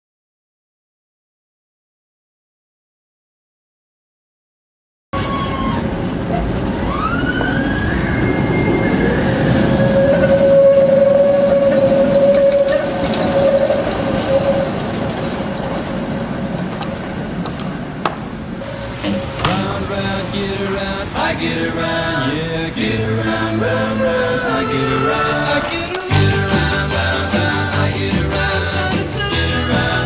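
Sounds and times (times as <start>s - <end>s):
tram whine on rails: 5.2s - 30.0s.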